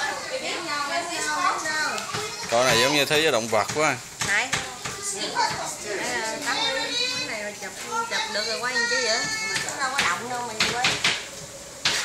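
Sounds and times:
sharp knocks: 9.5s - 11.2s.

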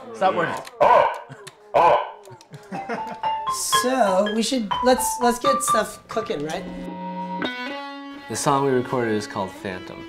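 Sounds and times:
man shouting through megaphone: 0.4s - 1.2s, 1.8s - 2.2s.

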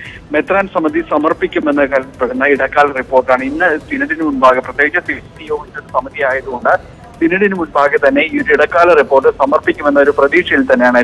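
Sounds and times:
news reporter speaking rapidly: 0.0s - 11.0s.

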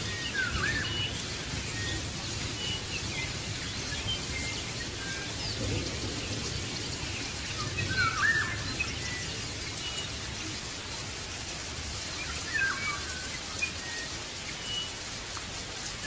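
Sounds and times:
birds chirping: 0.0s - 15.2s.

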